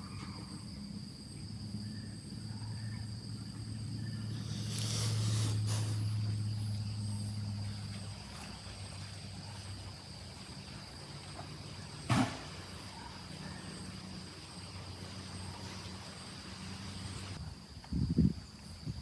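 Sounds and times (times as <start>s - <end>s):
low motor hum: 0.0s - 17.4s
high-pitched insect drone: 0.0s - 19.0s.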